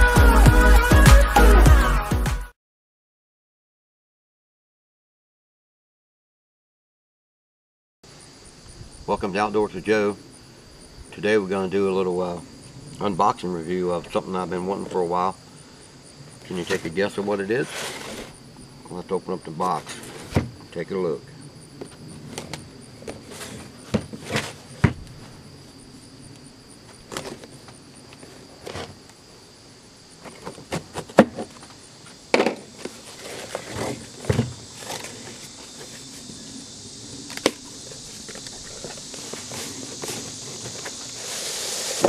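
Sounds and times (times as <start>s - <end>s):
high insect drone: 8.1s - 42.0s
cardboard knocks and scrapes: 19.9s - 20.6s, 22.3s - 25.1s, 32.3s - 36.0s.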